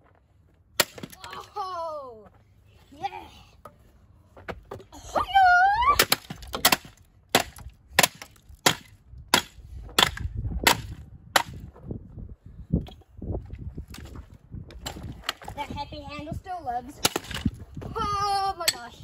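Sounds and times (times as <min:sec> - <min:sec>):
hatchet chopping plastic: 0:06.0 - 0:11.6.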